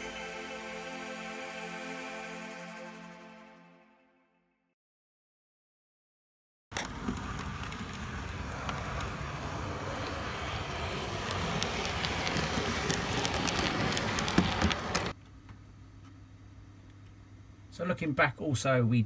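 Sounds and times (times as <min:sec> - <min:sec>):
model train wheels rattling on rails: 0:06.8 - 0:15.2
room hum: 0:06.8 - 0:19.0.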